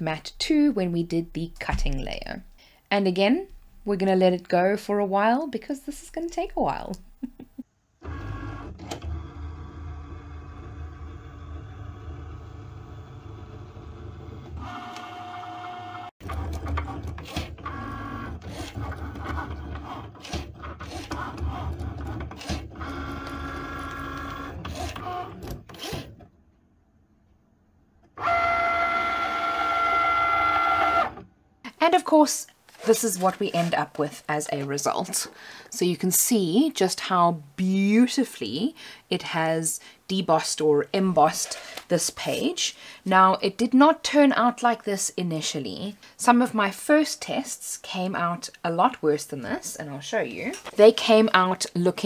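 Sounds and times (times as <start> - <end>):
cutting machine motor whirring: 8.0 - 18.8.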